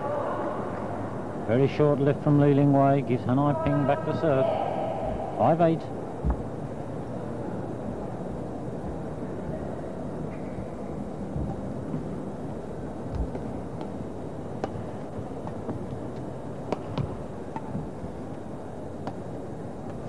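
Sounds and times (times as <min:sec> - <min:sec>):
crowded sports hall noise: 0:00.0 - 0:20.0.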